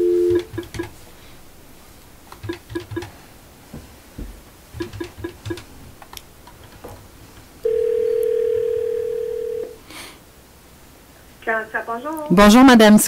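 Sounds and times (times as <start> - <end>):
telephone ringback tone: 0.0 - 0.8, 7.6 - 9.8.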